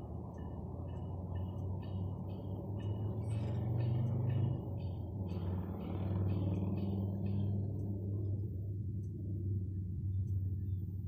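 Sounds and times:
diesel locomotive engine drone: 0.0s - 11.0s.

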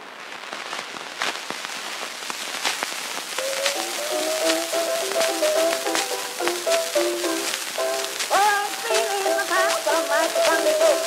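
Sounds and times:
record surface hiss and crackle: 0.0s - 11.0s
recorded music: 3.3s - 11.0s.

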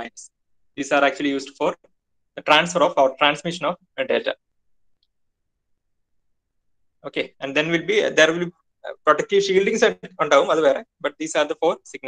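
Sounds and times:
man's voice: 7.1s - 12.0s.

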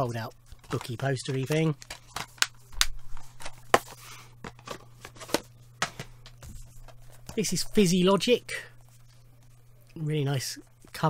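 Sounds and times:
paper rustling: 0.5s - 7.5s.

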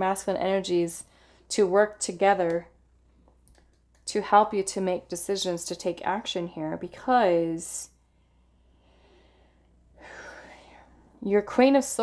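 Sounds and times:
faint low hum: 0.0s - 12.0s
woman breathing in: 8.0s - 11.1s.

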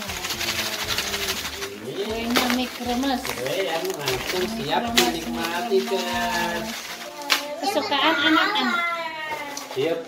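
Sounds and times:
children talking: 3.9s - 9.8s.

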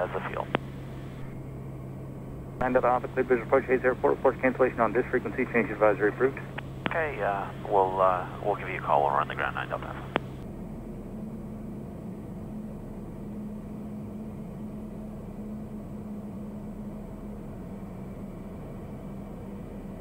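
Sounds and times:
low steady hum: 0.0s - 20.0s
turboprop engine cabin drone: 0.0s - 20.0s.

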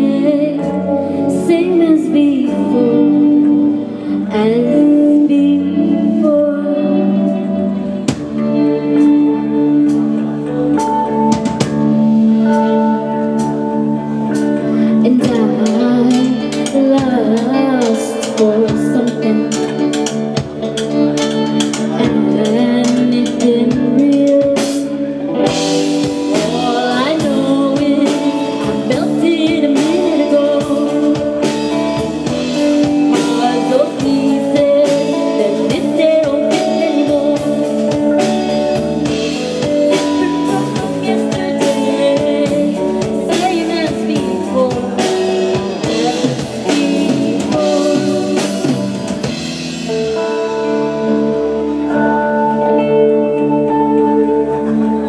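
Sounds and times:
bass guitar: 0.0s - 55.0s
drum kit: 0.0s - 55.0s
electric guitars: 0.0s - 55.0s.

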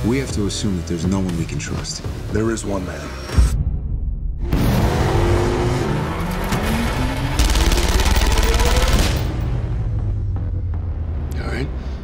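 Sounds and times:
trailer music: 0.0s - 12.0s
car engine revving: 4.4s - 10.5s.

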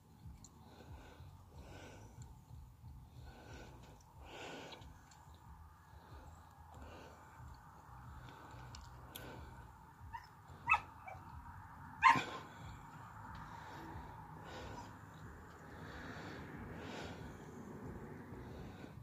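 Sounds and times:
husky barking and yipping: 10.1s - 11.4s, 12.0s - 12.6s.

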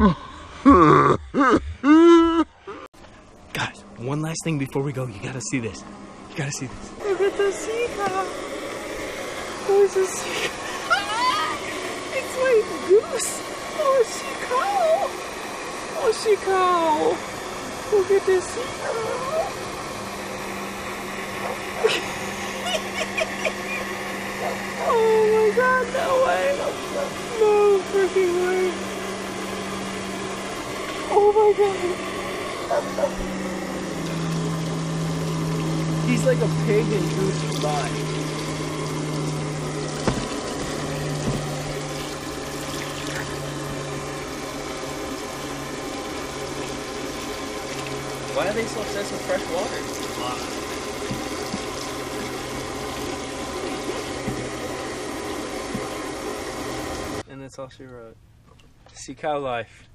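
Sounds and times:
low hum: 0.0s - 59.0s
water running from hose: 3.6s - 57.2s
water splashing: 7.0s - 57.2s.

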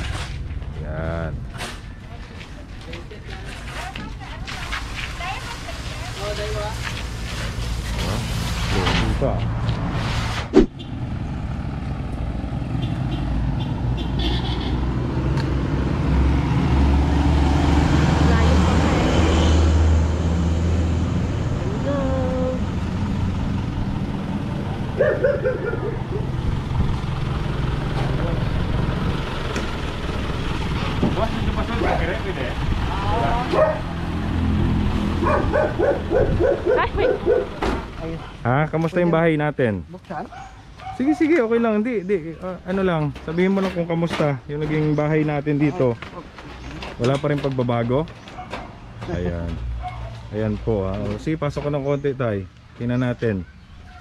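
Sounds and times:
road noise: 0.0s - 54.0s
truck engine running: 20.9s - 38.0s.

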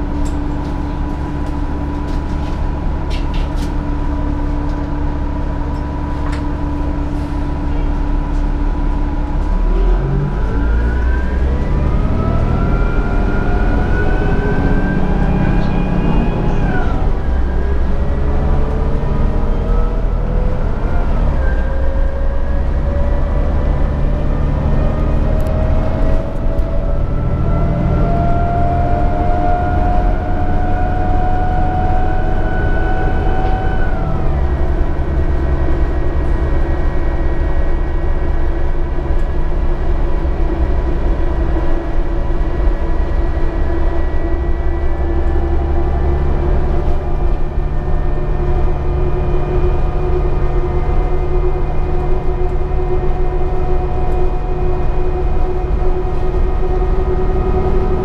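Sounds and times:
bus engine rumble and whine: 0.0s - 58.0s.

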